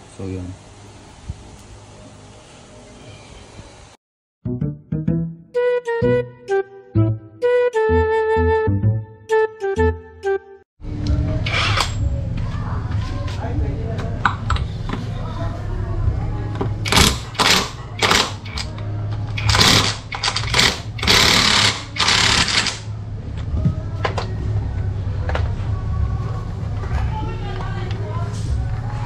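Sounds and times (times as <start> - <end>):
impact wrench bursts: 16.8 - 18.7, 19.4 - 22.9.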